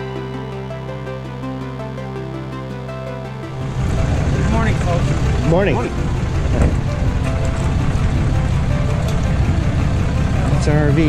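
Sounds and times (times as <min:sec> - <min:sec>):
background music: 0:00.0 - 0:11.0
pickup truck engine running low: 0:02.7 - 0:11.0.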